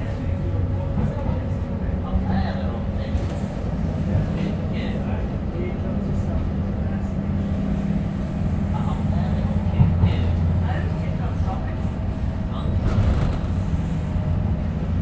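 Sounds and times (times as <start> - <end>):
faint passenger voices: 0.0 - 15.0
train wheels rumbling on rails: 0.0 - 15.0.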